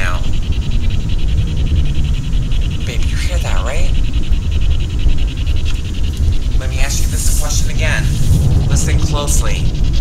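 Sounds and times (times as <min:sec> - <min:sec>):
low rumbling hiss: 0:00.0 - 0:10.0
static pulses chattering: 0:00.0 - 0:10.0.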